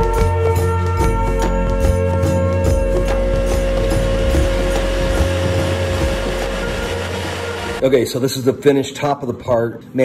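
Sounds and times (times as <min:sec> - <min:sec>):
router spindle milling wood: 0:03.5 - 0:07.8.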